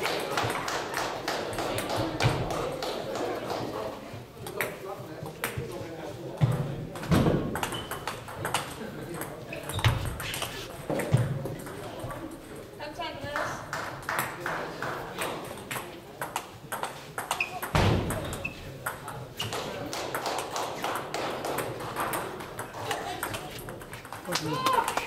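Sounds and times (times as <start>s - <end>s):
table tennis balls clicking: 6.5s - 12.7s, 13.3s - 25.0s.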